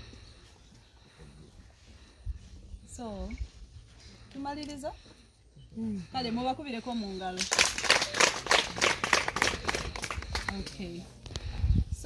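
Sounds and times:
people clapping: 7.4s - 11.0s.

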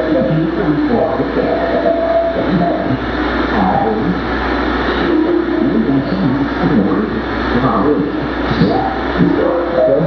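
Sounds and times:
electronic noise: 0.0s - 10.0s
low hum: 0.0s - 10.0s.

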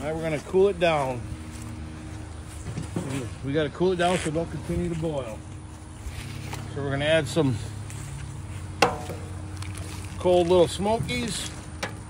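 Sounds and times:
metal tray knocking on metal pot: 8.8s - 9.2s.

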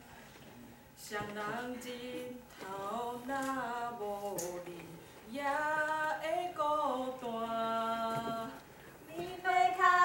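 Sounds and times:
women singing unaccompanied: 1.0s - 10.0s.

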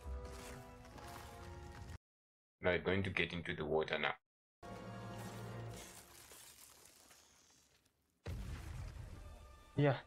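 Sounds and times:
faint film soundtrack: 0.0s - 2.0s, 3.6s - 7.2s.

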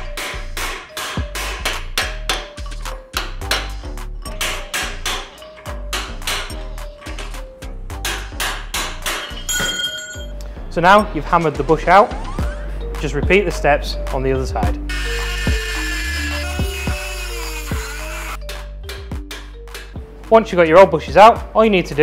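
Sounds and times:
background music with beat: 0.0s - 22.0s.

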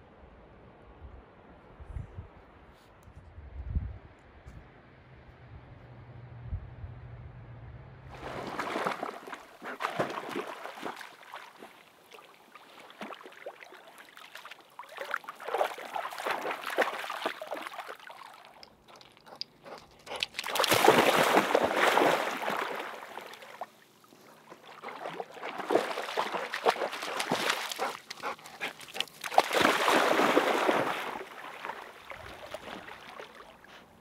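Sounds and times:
dog splashing through water: 8.1s - 33.7s.

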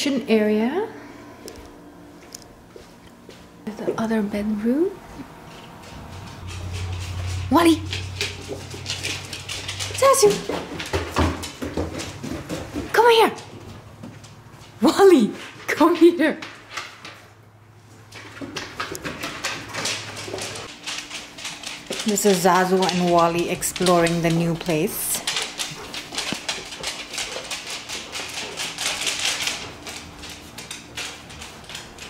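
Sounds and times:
dog claws clicking on wood floors: 5.5s - 17.3s, 18.1s - 32.0s.

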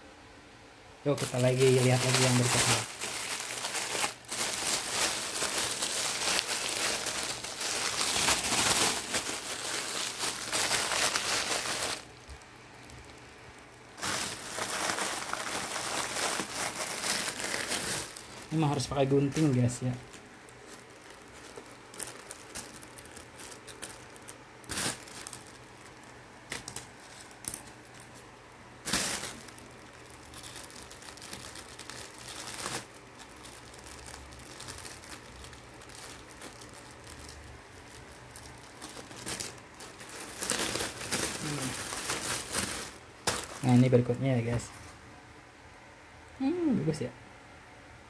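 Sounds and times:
plastic packaging crinkling: 1.1s - 44.7s.

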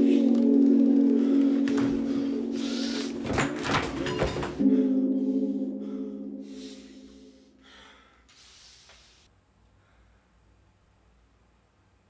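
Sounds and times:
gong-like low drone: 0.0s - 3.2s, 4.6s - 7.6s.

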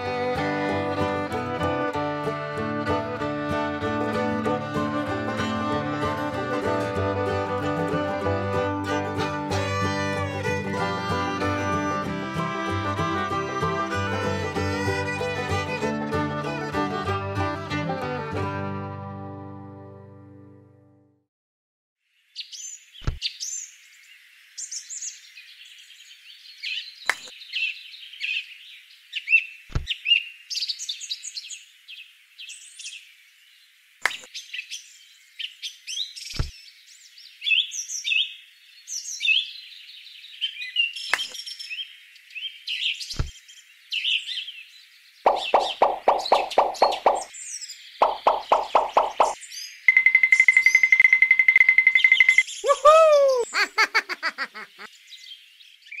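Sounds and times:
birdsong chirping: 22.4s - 56.0s.

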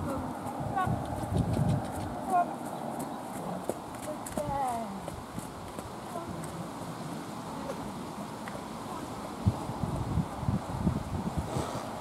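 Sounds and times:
horse hooves trotting on sand: 0.1s - 9.0s.

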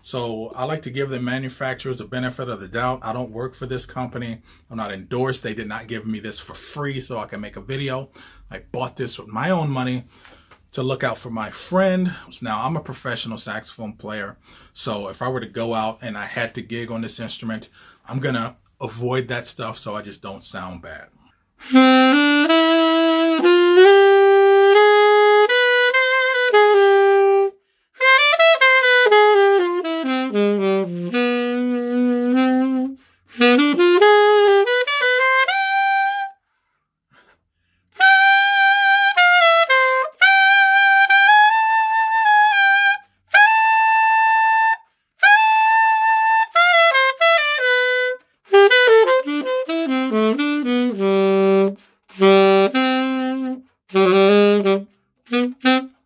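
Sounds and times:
solo alto saxophone: 20.9s - 56.0s.

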